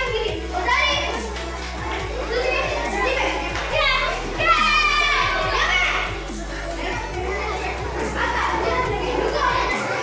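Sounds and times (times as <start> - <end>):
children shouting: 0.0 - 10.0
music with steady beat: 0.0 - 10.0.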